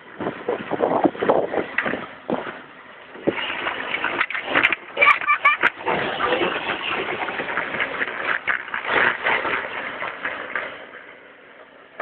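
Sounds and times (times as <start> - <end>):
toy car rattling on asphalt: 0.0 - 12.0.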